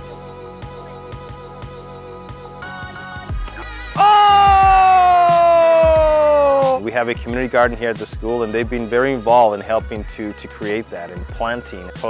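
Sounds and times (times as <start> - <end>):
background music: 0.0 - 12.0
children cheering: 4.0 - 6.8.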